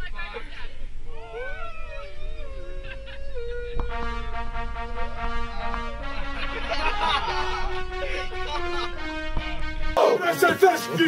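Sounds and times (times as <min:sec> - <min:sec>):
voices howling together: 0:01.0 - 0:04.2.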